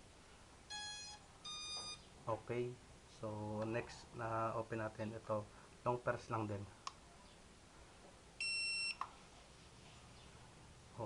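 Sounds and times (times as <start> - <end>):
remote controller high beep: 0.7 - 2.0, 8.4 - 9.0.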